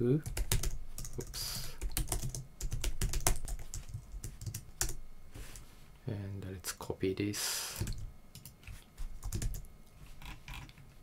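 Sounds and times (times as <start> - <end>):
computer keyboard keystrokes: 0.2 - 5.0, 7.8 - 8.6, 9.2 - 10.8.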